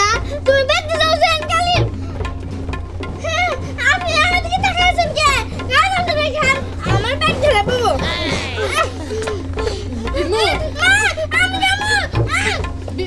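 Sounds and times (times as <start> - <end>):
background music: 0.0 - 13.0
girl whining and wailing: 3.2 - 13.0.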